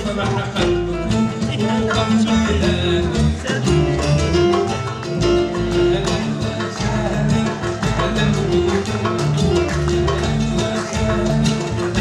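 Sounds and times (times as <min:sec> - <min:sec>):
low bass notes: 0:00.0 - 0:12.0
piano music: 0:00.0 - 0:12.0.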